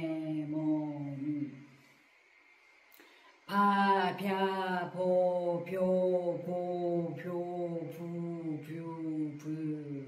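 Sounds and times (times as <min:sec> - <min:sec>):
woman chanting syllables: 0:00.0 - 0:01.9, 0:03.5 - 0:10.0.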